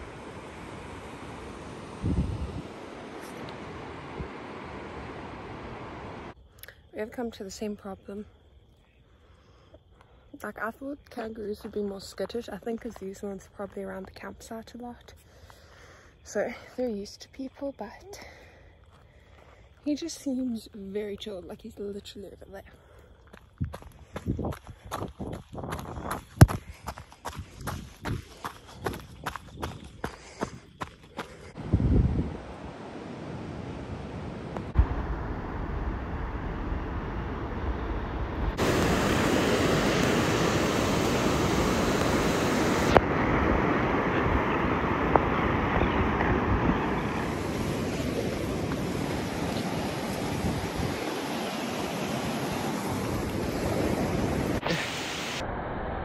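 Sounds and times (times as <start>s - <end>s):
wind: 0.0s - 56.0s
running footsteps on gravel: 23.2s - 31.6s
surf: 31.7s - 56.0s.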